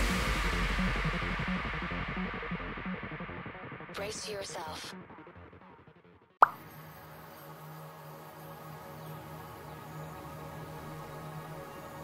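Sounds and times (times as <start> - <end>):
soft background music: 6.5 - 12.0.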